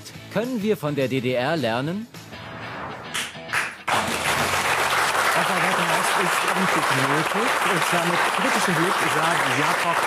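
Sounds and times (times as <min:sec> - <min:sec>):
studio audience applause: 0:03.5 - 0:10.0.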